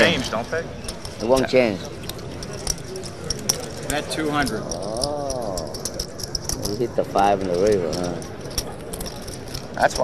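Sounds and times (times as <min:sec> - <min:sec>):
murmur of room chatter: 0:00.0 - 0:10.0
poker chips clicking: 0:00.0 - 0:10.0.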